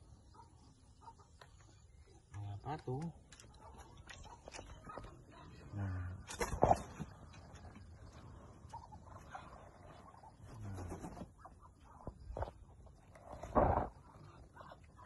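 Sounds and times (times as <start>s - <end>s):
chickens and ducks calling: 6.4s - 12.6s, 13.8s - 15.0s.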